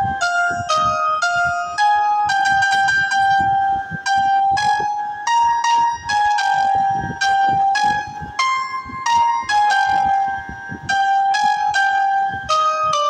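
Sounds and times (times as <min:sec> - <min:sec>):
synthesized trumpet-like melody: 0:00.0 - 0:13.0.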